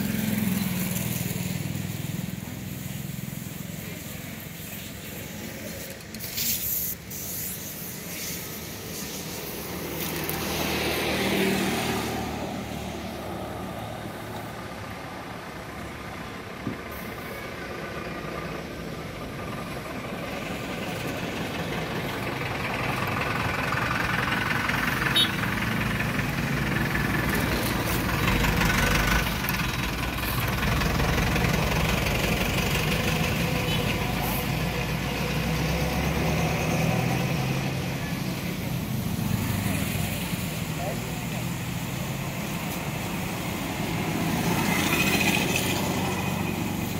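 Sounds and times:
vehicle engines humming: 0.0s - 46.9s.

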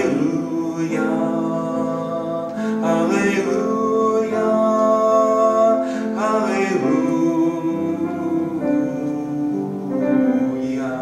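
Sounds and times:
man singing slow song: 0.0s - 11.0s
piano accompaniment: 0.0s - 11.0s.

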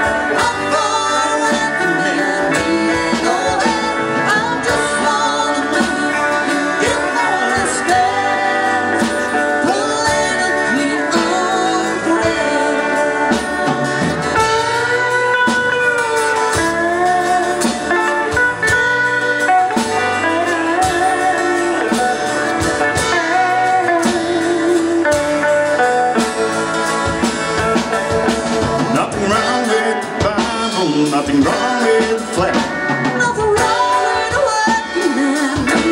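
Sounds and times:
live country band playing: 0.0s - 35.9s.

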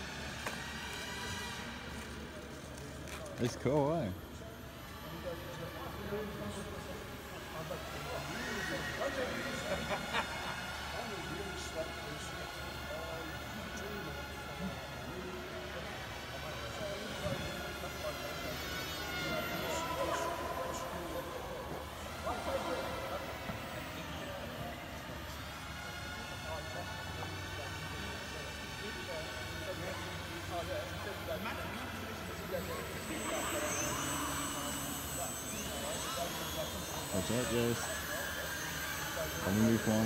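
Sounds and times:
model airplane motors whining: 0.0s - 40.0s.

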